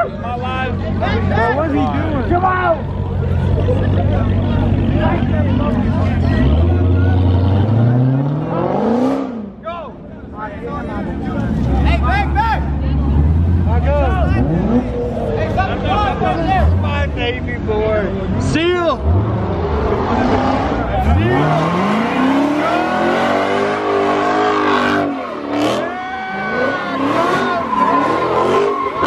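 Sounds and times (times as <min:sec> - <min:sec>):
crowd chatter and shouting: 0:00.0 - 0:29.0
car engine running and revving: 0:00.2 - 0:09.5, 0:11.0 - 0:29.0.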